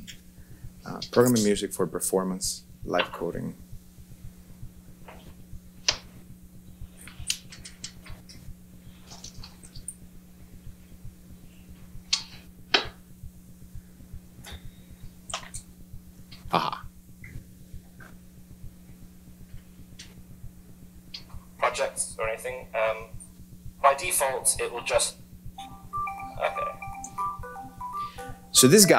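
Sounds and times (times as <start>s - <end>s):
low electrical hum: 0.0s - 28.9s.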